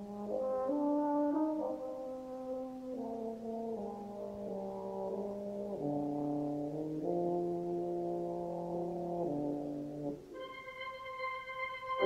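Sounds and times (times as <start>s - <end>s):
brass band playing held chords: 0.0s - 12.0s.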